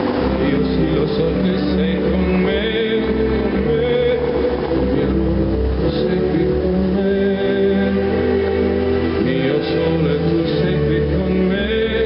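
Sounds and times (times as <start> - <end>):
crowd voices: 0.0 - 12.0
fountain show music: 0.0 - 12.0
water jets spraying and falling: 0.0 - 12.0.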